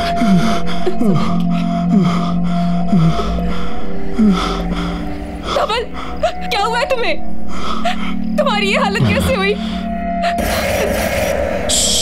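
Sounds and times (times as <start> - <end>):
tense background music drone: 0.0 - 12.0.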